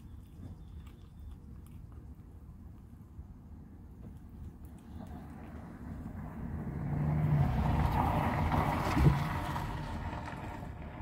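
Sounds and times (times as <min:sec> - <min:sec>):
motor vehicle passing by: 0:04.7 - 0:11.0.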